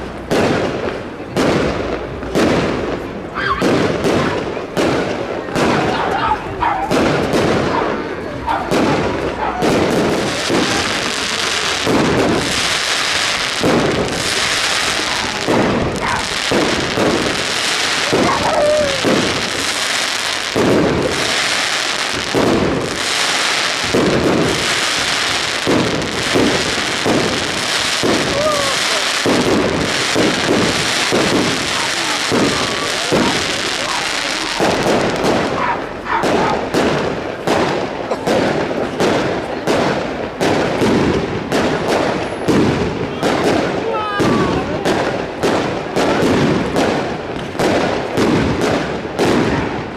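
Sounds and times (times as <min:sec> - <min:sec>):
fireworks bangs and crackles: 0:00.0 - 0:49.9.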